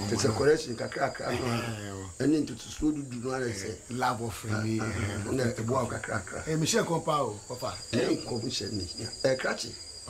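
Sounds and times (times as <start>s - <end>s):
man talking: 0.0s - 9.8s
crickets chirping: 0.0s - 10.0s.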